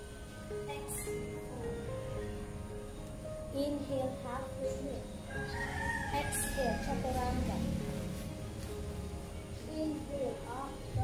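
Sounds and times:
rooster crowing: 5.3s - 7.2s.

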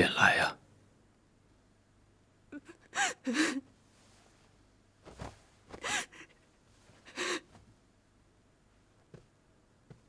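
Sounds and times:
person gasping and sobbing: 2.6s - 3.7s, 5.7s - 6.4s, 7.0s - 7.6s.

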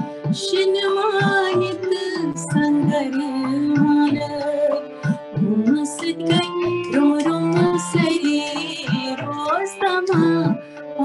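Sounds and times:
woman singing slow melody: 0.4s - 11.0s.

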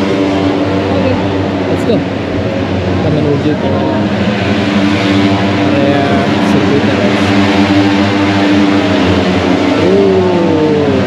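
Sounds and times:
engine note sweeping in pitch: 0.0s - 11.0s
racing motorcycle engines droning: 0.0s - 11.0s.

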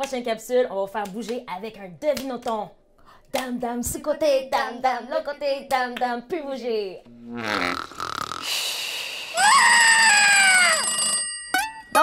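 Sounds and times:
bell-like ringing: 10.5s - 12.0s.

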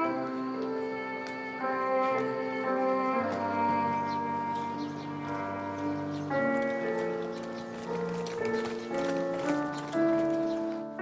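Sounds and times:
background music of held notes: 0.0s - 11.0s
horse hooves clip-clopping: 0.0s - 11.0s.

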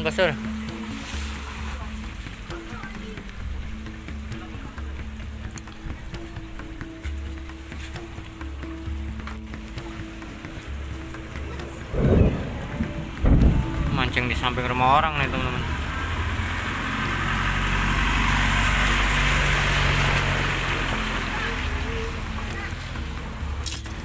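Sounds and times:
light rain on river: 0.0s - 24.0s
low hum: 10.9s - 17.0s.

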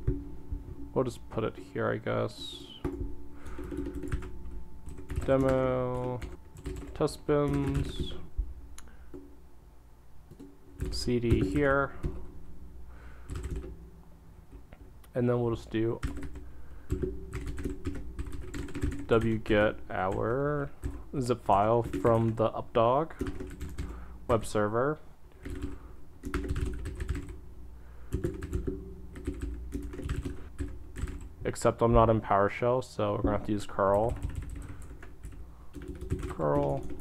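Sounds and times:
keyboard typing: 2.4s - 8.2s, 10.3s - 12.2s, 13.3s - 13.7s, 16.0s - 22.4s, 23.1s - 24.4s, 25.4s - 27.4s, 28.1s - 31.3s, 33.9s - 37.0s.

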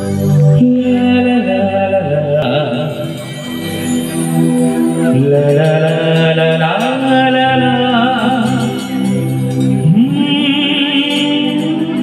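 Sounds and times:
live band accompaniment: 0.0s - 12.0s
man singing into microphone: 0.2s - 3.7s, 5.0s - 12.0s.

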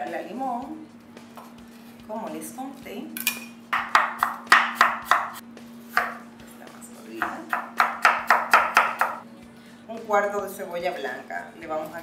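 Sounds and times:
knife chopping on wooden board: 3.7s - 6.2s, 7.2s - 9.2s.

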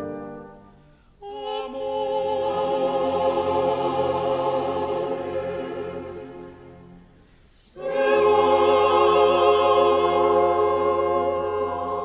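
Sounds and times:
opera chorus with orchestra: 0.0s - 12.0s.

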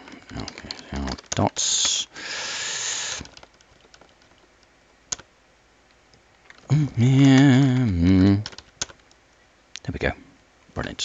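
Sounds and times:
hissing noise: 1.6s - 3.4s
keyboard key clicks: 8.4s - 9.2s.

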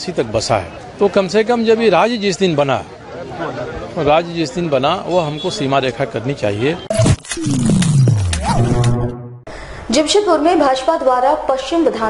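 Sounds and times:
sharp clicks: 6.9s - 9.0s
deep tone sweeping downward: 6.9s - 9.5s
rising and falling tone: 6.9s - 9.5s.

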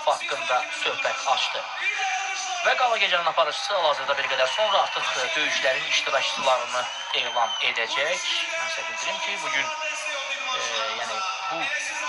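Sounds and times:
man talking into microphone: 0.0s - 12.0s.

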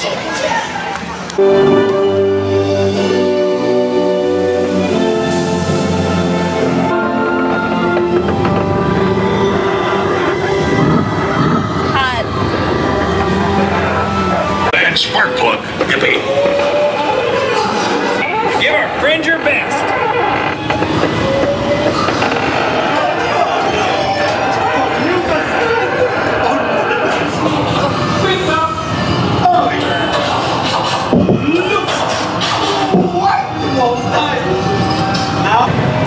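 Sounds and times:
ride car rumbling: 0.0s - 36.0s
wind rushing: 8.4s - 14.8s
voices over speakers: 13.6s - 16.3s.

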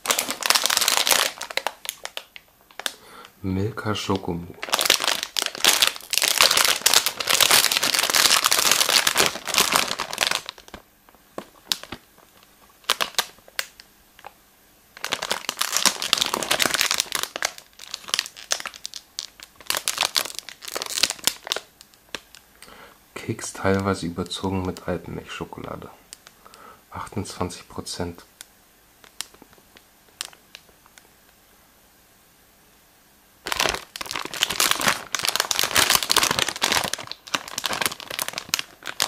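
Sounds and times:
plastic wrapper crinkling: 0.0s - 3.0s, 4.0s - 14.4s, 15.0s - 22.7s, 29.0s - 31.1s, 33.4s - 39.0s.

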